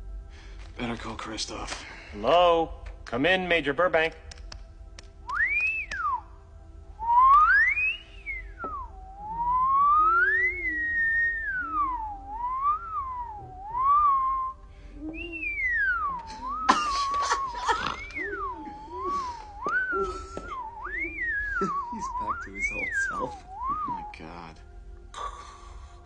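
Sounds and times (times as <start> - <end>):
man whistling wavering tone: 5.3 - 6.4, 7.0 - 24.6.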